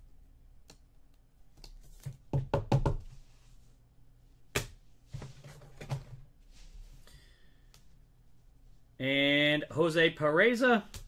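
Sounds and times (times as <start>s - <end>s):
cards knocking on a desk: 1.9s - 3.1s.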